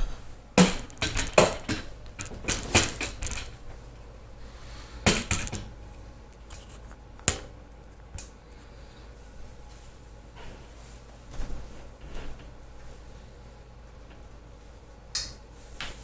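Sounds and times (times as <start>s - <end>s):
handling knocks and clicks: 0.6s - 3.8s, 5.1s - 7.5s.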